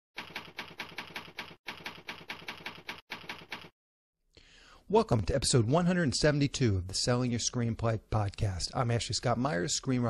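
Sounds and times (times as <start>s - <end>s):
typewriter keys clacking: 0.2s - 3.7s.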